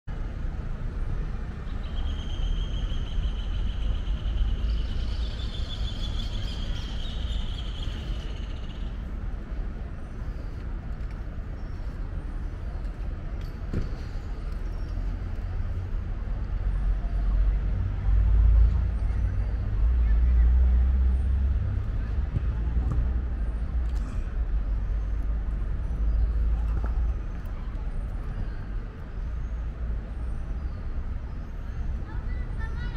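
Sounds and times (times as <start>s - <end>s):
traffic running: 0.1s - 32.9s
passing vehicle rumble: 13.9s - 32.9s.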